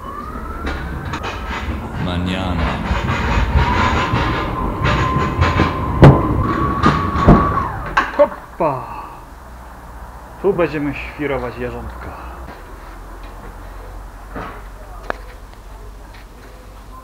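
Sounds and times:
electric drive whining: 0:00.0 - 0:08.6
loud knocks: 0:00.4 - 0:08.2.

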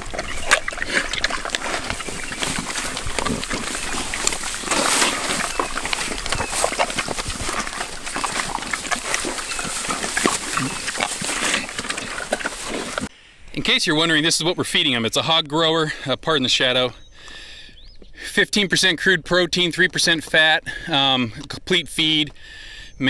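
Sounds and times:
pigs chewing and snuffling: 0:00.0 - 0:13.1, 0:15.9 - 0:22.8.

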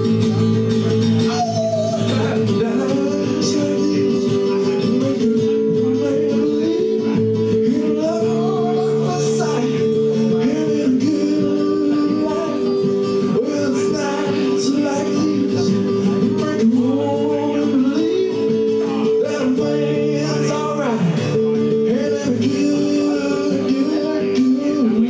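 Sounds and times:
man singing: 0:00.0 - 0:25.0
strummed acoustic guitar: 0:00.0 - 0:25.0.

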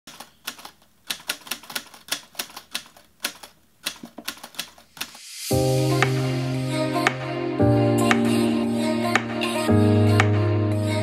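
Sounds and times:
typewriter key clicks: 0:00.1 - 0:05.2
rising whoosh: 0:05.2 - 0:07.5.

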